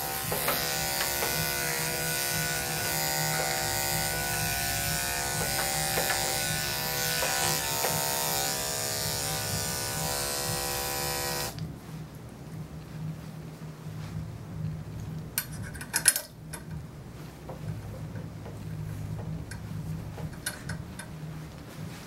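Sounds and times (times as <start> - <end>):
electric clippers buzzing: 0.0 - 11.6.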